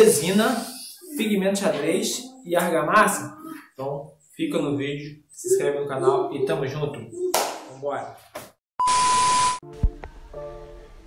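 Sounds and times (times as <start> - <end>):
static hiss: 0.0 - 1.3
quiet background music: 9.6 - 11.0.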